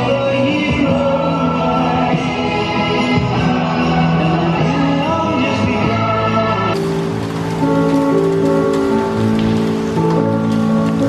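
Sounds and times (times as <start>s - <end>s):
rain falling on pavement: 6.7s - 11.0s.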